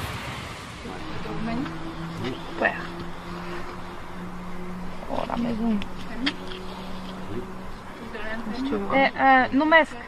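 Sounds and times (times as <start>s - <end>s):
steady low hum: 0.8s - 10.0s.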